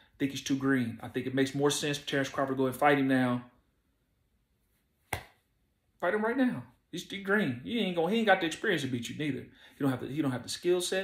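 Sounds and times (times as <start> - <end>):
finger snap: 5.1 - 5.5.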